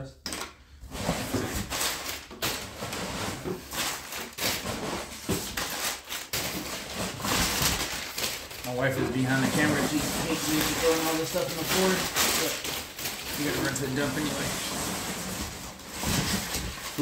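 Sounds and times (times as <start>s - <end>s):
paper crumpling: 1.3s - 17.0s.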